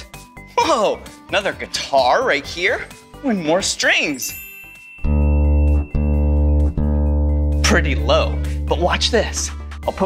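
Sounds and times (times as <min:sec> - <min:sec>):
deep plucked string note: 0:05.0 - 0:07.9.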